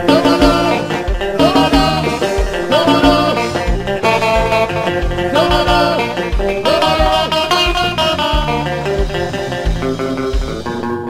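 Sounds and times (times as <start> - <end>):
live band playing: 0.0 - 11.0
sliding electric guitar notes: 0.0 - 11.0.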